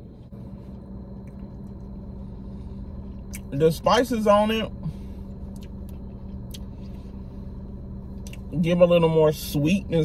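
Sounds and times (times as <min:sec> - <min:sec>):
low hum in car cabin: 0:00.0 - 0:10.0.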